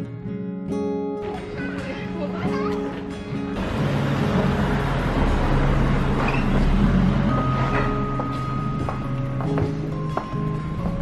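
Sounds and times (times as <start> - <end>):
car driving past: 3.6 - 8.3.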